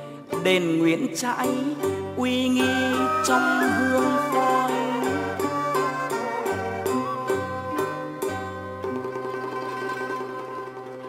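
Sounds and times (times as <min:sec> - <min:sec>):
plucked string notes: 0:00.0 - 0:11.0
steady held tones: 0:00.0 - 0:11.0.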